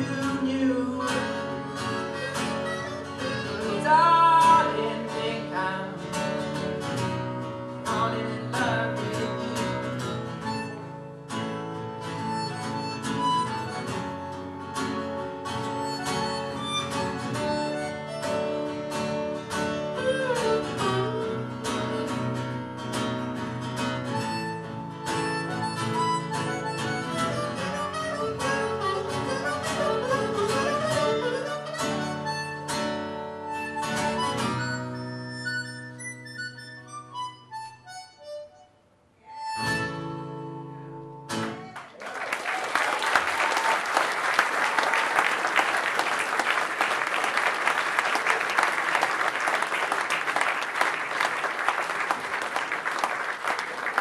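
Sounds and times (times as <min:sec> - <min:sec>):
harmonica solo: 0:00.0 - 0:05.1, 0:09.4 - 0:42.0
strummed acoustic guitar: 0:00.0 - 0:36.2, 0:39.6 - 0:41.8.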